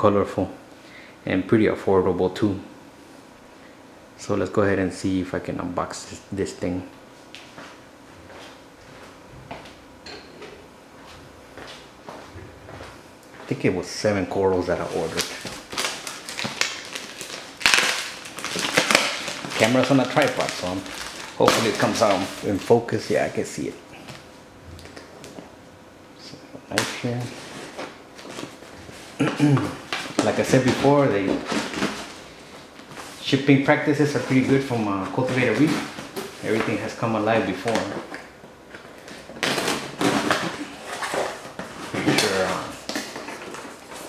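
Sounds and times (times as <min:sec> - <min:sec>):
plastic bag crinkling: 0:14.7 - 0:22.7
packing tape ripping off box: 0:15.0 - 0:22.6, 0:39.0 - 0:44.0.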